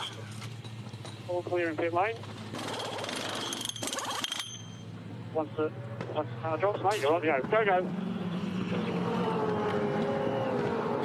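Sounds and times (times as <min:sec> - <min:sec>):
pneumatic wheel guns rattling: 0:02.3 - 0:04.9.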